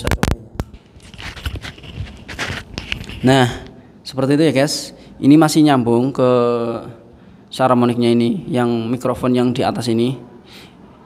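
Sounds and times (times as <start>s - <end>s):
rustling and scraping of cable: 0.0s - 3.3s.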